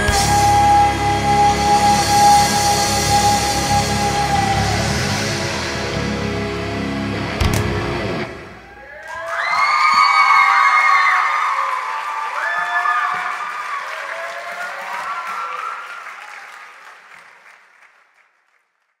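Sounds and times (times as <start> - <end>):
cheering shouts: 8.6 - 16.9
audience applauding: 8.6 - 19.0.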